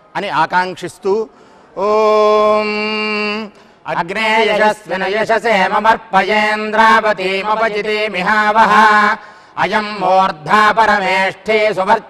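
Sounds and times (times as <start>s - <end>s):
men chanting in low recitation: 1.8s - 12.0s.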